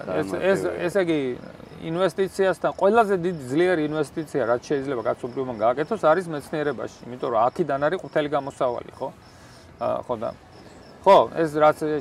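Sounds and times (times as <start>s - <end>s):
man speaking: 0.0s - 9.2s
crickets chirring: 0.0s - 12.0s.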